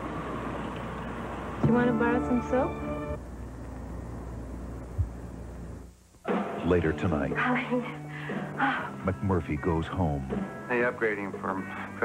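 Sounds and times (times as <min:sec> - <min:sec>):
steady low hiss: 0:00.0 - 0:12.0.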